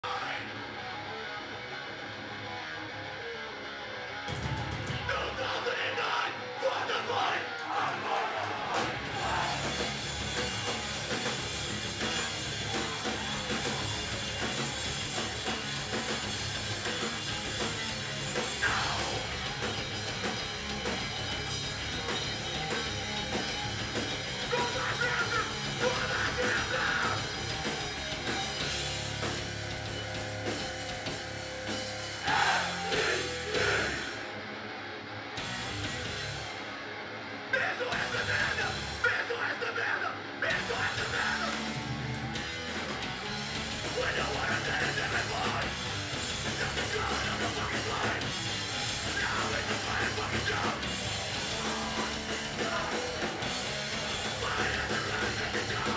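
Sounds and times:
electric guitar: 0.0s - 55.9s
hardcore band playing live: 0.0s - 55.9s
shouted vocals: 5.0s - 10.0s, 18.6s - 19.3s, 24.5s - 27.4s, 32.2s - 34.3s, 37.6s - 41.8s, 43.9s - 45.8s, 49.0s - 55.9s
person yelling: 24.5s - 27.2s, 37.6s - 41.6s.

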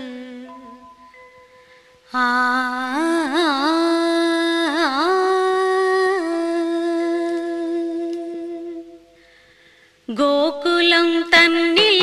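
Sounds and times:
woman singing a long note: 0.0s - 0.9s, 2.1s - 9.2s.

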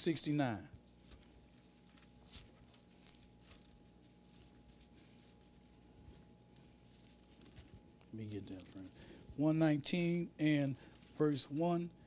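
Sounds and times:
faint room hum: 0.0s - 12.0s
thin pages being turned: 0.8s - 9.0s.

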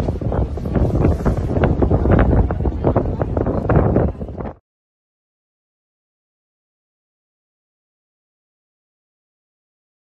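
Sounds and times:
wind buffeting microphone: 0.0s - 4.6s.

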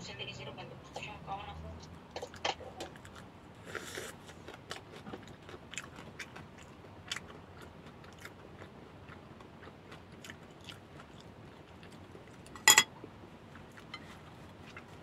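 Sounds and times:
person chewing crunchy food: 2.2s - 12.6s, 13.4s - 15.0s.

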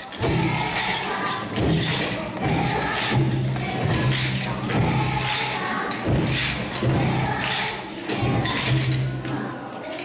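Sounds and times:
rhythm sticks clicking: 0.0s - 9.4s
children's voices: 0.0s - 10.0s.

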